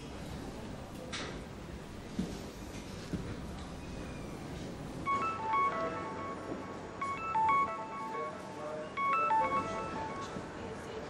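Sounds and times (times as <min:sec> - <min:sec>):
mobile phone ringtone: 0:05.1 - 0:10.8.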